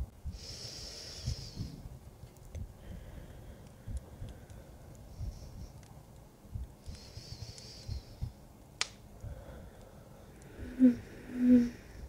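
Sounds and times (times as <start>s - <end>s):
fireplace crackling: 0.0s - 12.0s.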